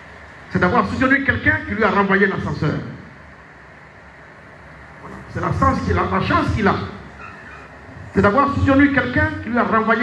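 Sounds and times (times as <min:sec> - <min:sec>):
room background hiss: 0:00.0 - 0:10.0.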